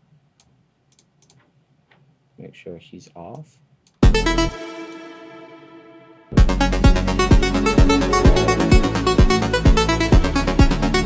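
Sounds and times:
computer mouse clicks: 0.4 - 1.5.

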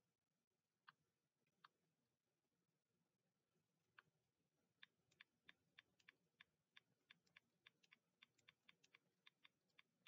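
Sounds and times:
typing on computer keyboard: 4.8 - 10.0.

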